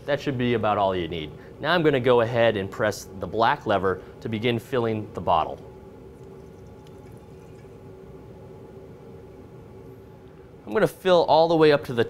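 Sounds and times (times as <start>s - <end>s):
beer running into bottle: 6.2s - 7.8s.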